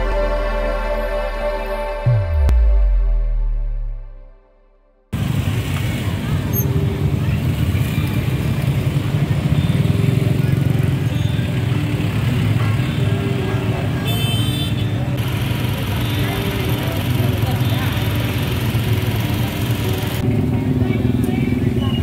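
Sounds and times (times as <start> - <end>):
intro jingle: 0.0 - 5.0
cars and motorcycles passing: 5.1 - 22.0
crowd of people talking: 5.2 - 22.0.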